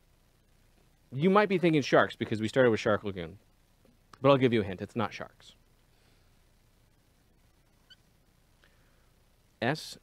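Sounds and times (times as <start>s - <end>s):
marker squeaking on whiteboard: 7.8s - 8.1s.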